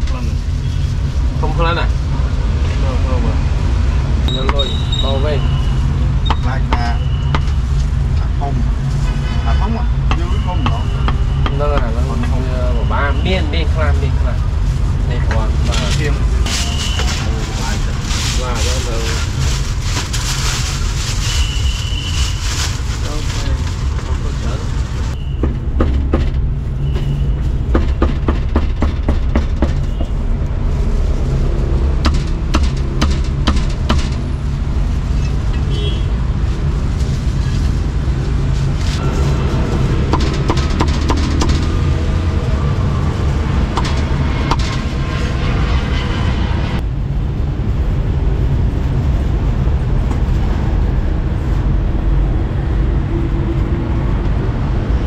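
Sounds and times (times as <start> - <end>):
street traffic rumble: 0.0 - 55.0
voices: 9.5 - 14.4, 15.0 - 19.3.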